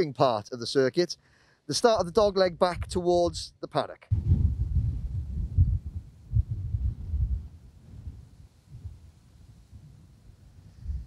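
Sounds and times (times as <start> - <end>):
wind buffeting microphone: 2.0 - 3.5, 4.1 - 11.0.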